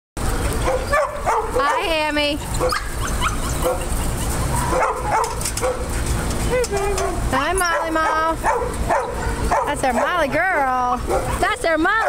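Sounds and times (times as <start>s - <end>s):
dogs yipping and whining: 0.3s - 12.0s.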